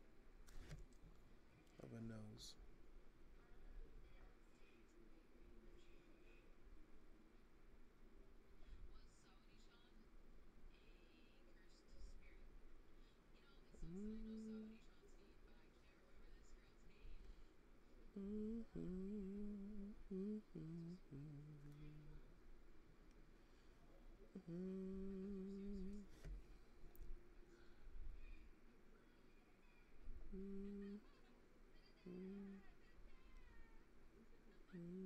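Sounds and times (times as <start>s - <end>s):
man humming: 18.2s - 22.2s, 24.4s - 26.0s, 30.3s - 31.0s, 34.8s - 35.0s.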